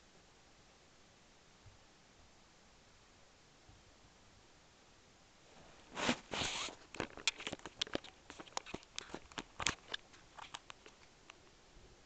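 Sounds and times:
camera handling clicks and rustling: 6.7s - 11.0s.

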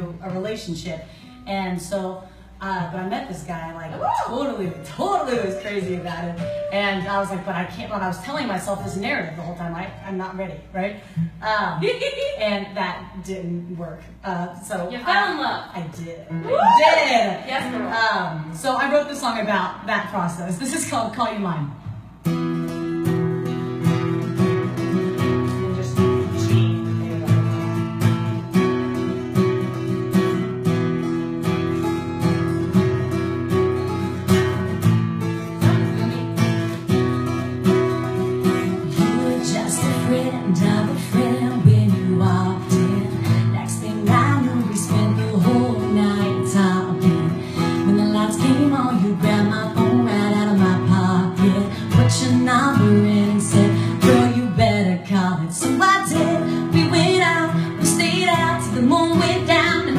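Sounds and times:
acoustic guitar strumming: 0.0s - 11.4s, 17.2s - 19.4s, 21.8s - 59.9s.

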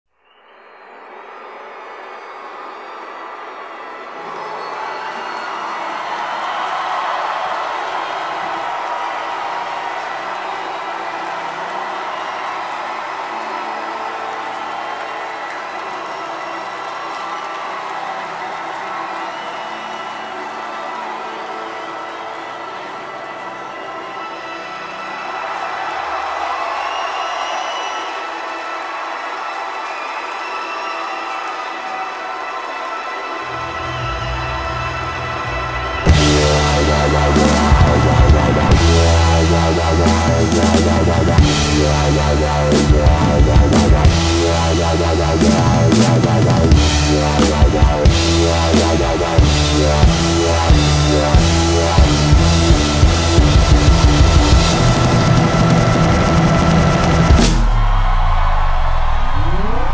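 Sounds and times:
concert crowd cheering and whooping: 0.3s - 59.9s
band playing slow held tones: 36.0s - 59.9s
heavy loud bass: 36.1s - 59.9s.

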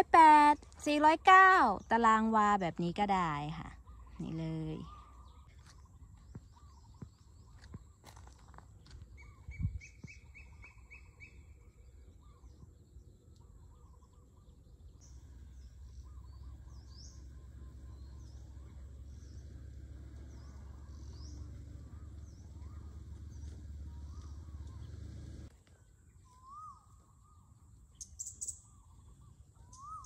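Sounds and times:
birds chirping: 0.0s - 30.0s.

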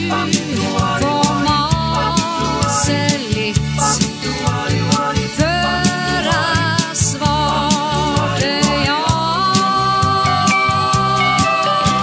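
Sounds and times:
pop band music: 0.0s - 12.0s.

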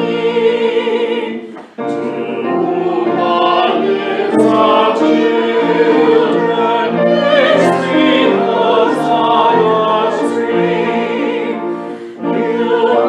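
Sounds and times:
choir singing sacred music: 0.0s - 13.0s.

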